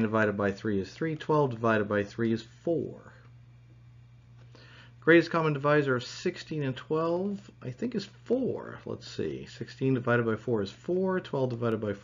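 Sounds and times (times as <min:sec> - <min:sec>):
person speaking: 0:00.0 - 0:03.8, 0:04.6 - 0:12.0
low electrical hum with hiss: 0:00.0 - 0:12.0
soft breath: 0:04.4 - 0:05.0.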